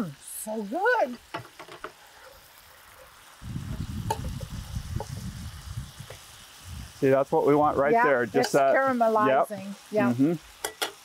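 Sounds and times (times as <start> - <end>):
fish sizzling in oil: 0.0 - 11.0.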